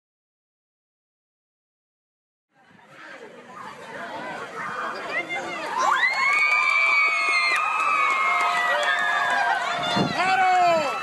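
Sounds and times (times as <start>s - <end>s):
children cheering and screaming: 4.4s - 11.0s.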